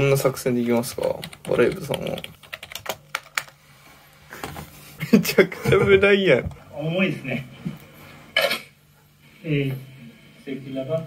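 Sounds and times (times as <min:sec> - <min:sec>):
keyboard typing: 0:00.7 - 0:03.6.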